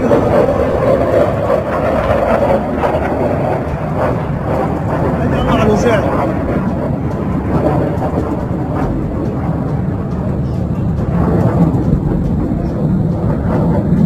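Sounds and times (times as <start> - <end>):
military jet flying overhead: 0.0 - 14.0.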